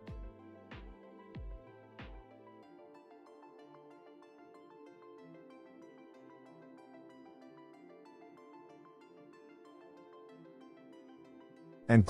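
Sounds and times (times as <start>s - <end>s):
faint instrumental music: 0.0s - 12.0s.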